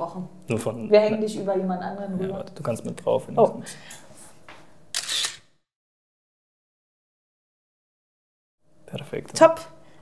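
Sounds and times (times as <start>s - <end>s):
camera shutter click: 4.9s - 5.5s.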